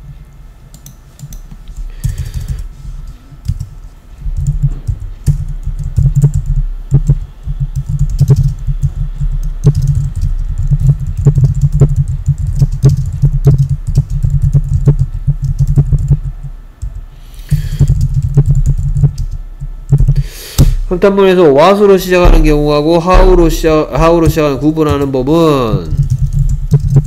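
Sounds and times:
typing on computer keyboard: 0:00.7 - 0:20.2, 0:24.2 - 0:27.0.

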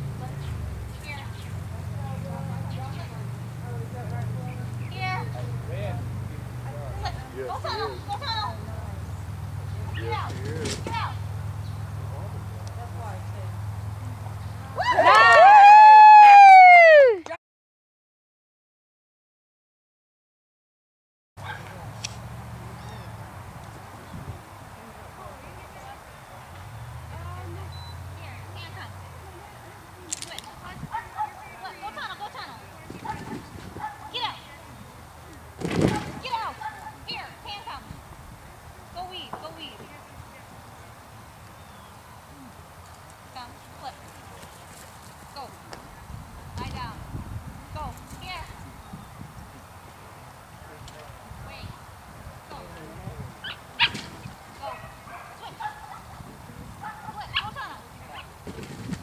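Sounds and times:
dog barking: 0:21.4 - 0:21.7, 0:31.0 - 0:31.5, 0:33.8 - 0:34.1, 0:54.6 - 0:56.2, 0:56.8 - 0:57.2
distant voices calling: 0:21.4 - 0:59.0.

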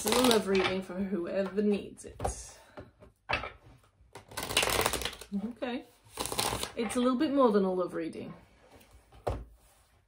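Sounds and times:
cards being shuffled: 0:00.0 - 0:00.5, 0:04.2 - 0:05.3, 0:06.1 - 0:06.8.

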